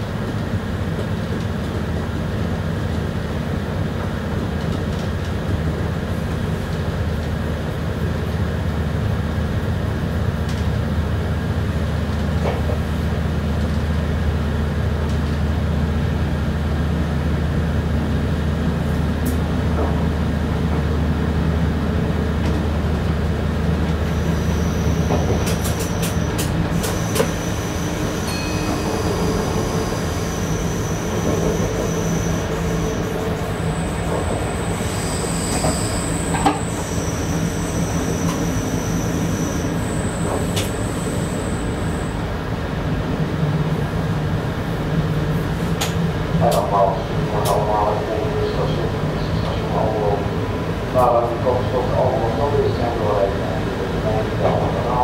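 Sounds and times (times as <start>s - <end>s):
diesel engine drone: 5.6s - 55.0s
train wheels squealing: 24.0s - 42.3s.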